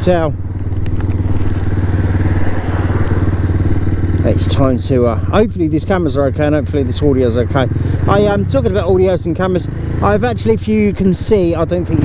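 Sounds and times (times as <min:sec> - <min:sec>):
motorcycle engine running: 0:00.0 - 0:12.0
road noise: 0:00.0 - 0:12.0.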